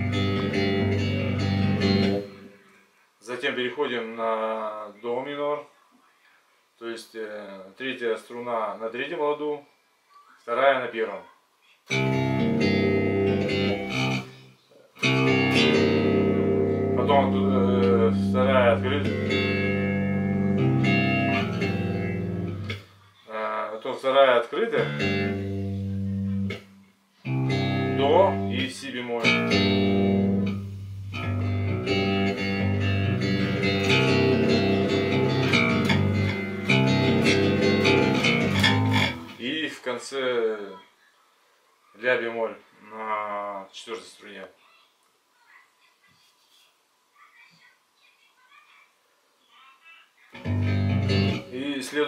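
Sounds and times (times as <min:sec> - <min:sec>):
electric bass guitar chord: 0:00.0 - 0:02.4, 0:11.9 - 0:14.4, 0:15.0 - 0:22.8, 0:24.8 - 0:26.6, 0:27.3 - 0:39.4, 0:50.4 - 0:51.5
low bass guitar note ringing: 0:29.2 - 0:39.4.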